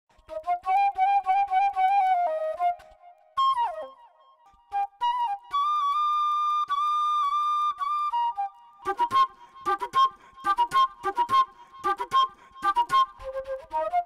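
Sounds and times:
solo flute melody: 0.1s - 14.0s.

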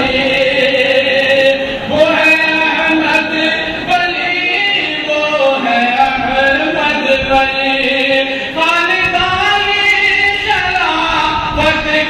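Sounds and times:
man chanting melodic recitation: 0.0s - 12.0s.

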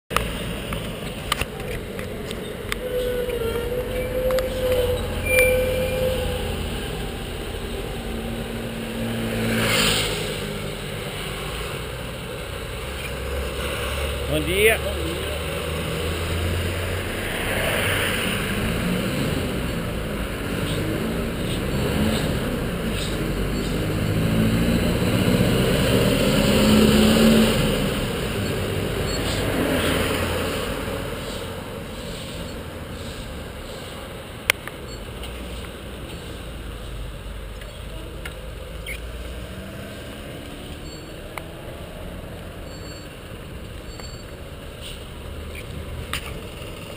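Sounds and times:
street traffic rumble: 0.1s - 46.9s
wind and road noise: 0.1s - 46.9s
vehicle passing: 0.2s - 33.9s.

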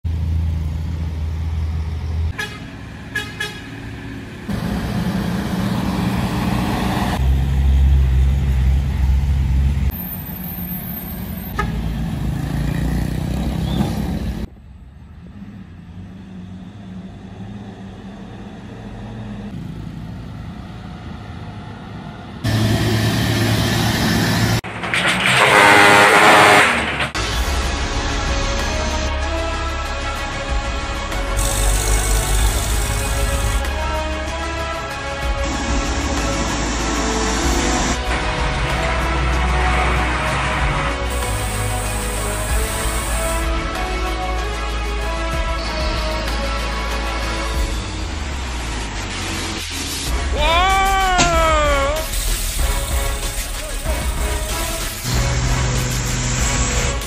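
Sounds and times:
heavy diesel trucks running: 0.0s - 57.0s
truck horn toots: 2.3s - 3.8s, 11.5s - 11.9s, 25.2s - 27.2s.

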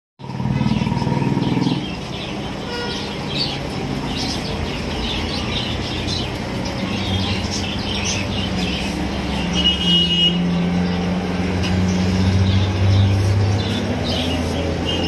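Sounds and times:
small birds chirping: 0.2s - 15.0s.

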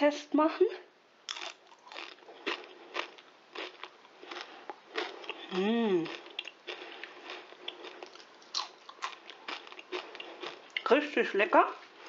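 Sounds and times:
potato chips crunching: 1.3s - 12.0s.

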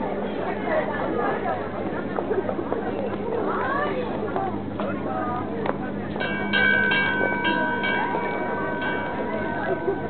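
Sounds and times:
bell ringing: 6.2s - 10.0s.

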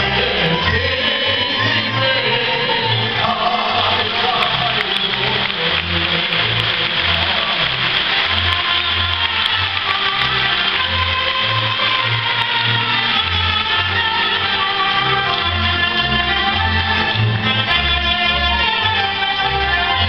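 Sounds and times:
accordions playing: 0.0s - 20.0s
clarinet playing lead: 4.8s - 20.0s.

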